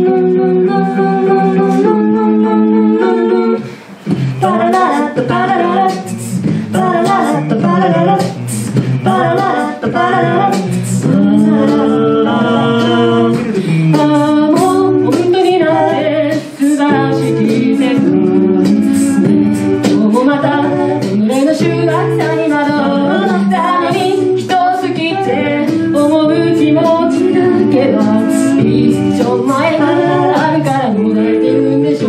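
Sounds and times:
mixed voices singing in harmony: 0:00.0 - 0:32.0
vocal percussion beat: 0:00.0 - 0:32.0.

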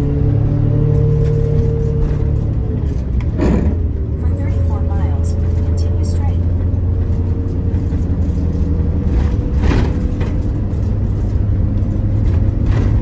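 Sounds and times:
coach diesel engine running: 0:00.0 - 0:13.0
road noise: 0:00.0 - 0:13.0.

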